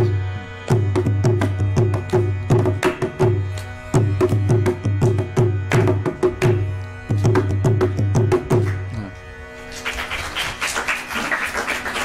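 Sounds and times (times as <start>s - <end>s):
audience applauding: 9.7s - 12.0s.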